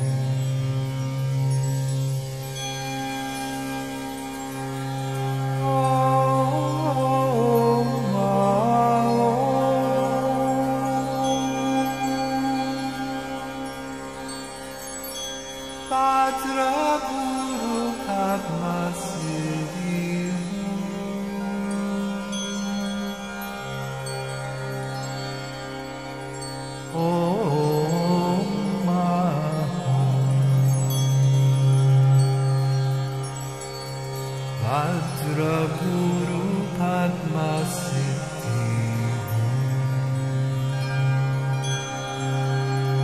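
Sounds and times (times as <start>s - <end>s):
person chanting: 5.6s - 13.7s, 15.9s - 23.4s, 27.0s - 32.4s, 34.6s - 40.9s.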